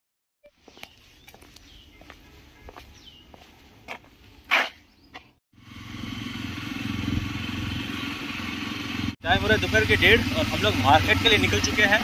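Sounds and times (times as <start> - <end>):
motorcycle engine running: 5.6 - 12.0.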